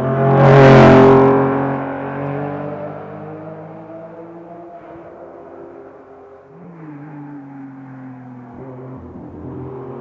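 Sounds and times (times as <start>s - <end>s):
rally car engine: 0.0s - 10.0s.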